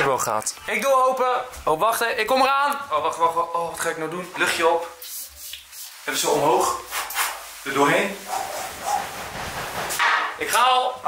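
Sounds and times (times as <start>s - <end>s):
aerosol spray hissing: 5.0s - 6.2s.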